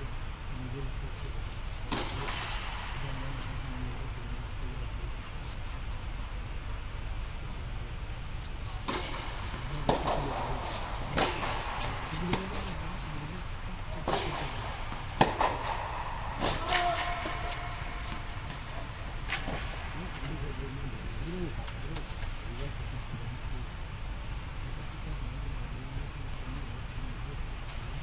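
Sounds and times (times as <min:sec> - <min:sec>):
low hum: 0:00.0 - 0:28.0
tennis ball hit by rackets: 0:08.8 - 0:12.7, 0:14.0 - 0:19.8
murmuring voices: 0:09.6 - 0:14.6.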